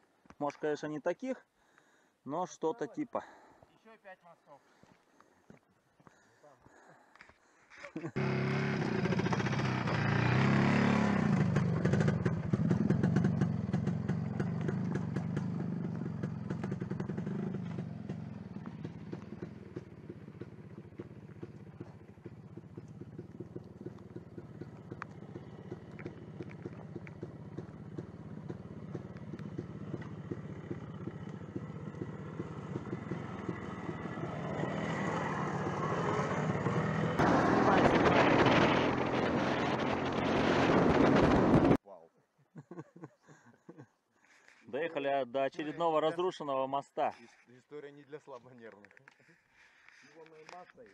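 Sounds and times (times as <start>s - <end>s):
motorcycle engine running: 8.2s - 41.8s
rushing wind: 33.8s - 41.8s.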